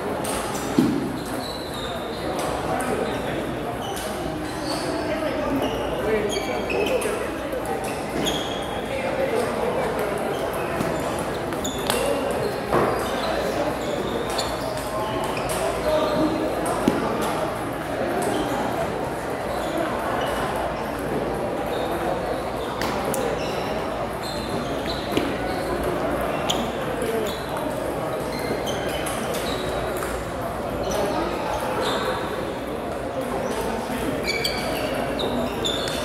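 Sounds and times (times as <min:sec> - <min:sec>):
murmur of voices: 0:00.0 - 0:36.0.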